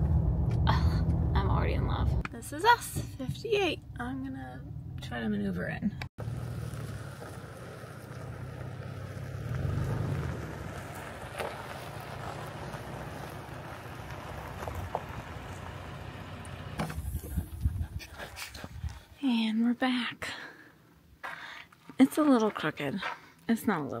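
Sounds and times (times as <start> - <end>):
wind buffeting microphone: 16.9 - 19.1.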